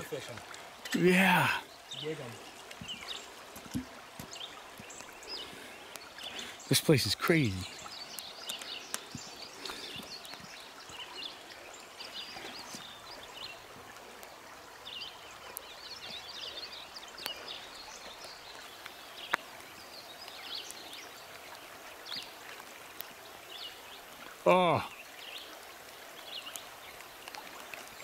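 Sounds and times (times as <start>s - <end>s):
birds chirping: 0.0s - 28.0s
river running over rocks: 0.0s - 28.0s.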